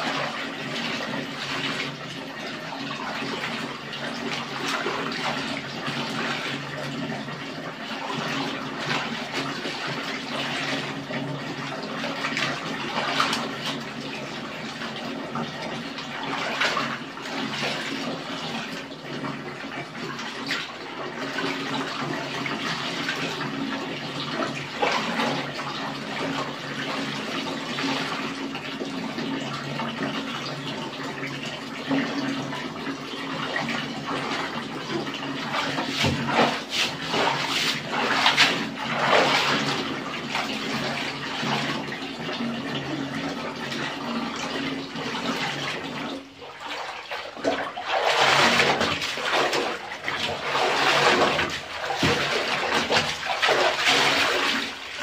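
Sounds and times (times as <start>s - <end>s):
water splashing in a basin: 0.0s - 55.0s.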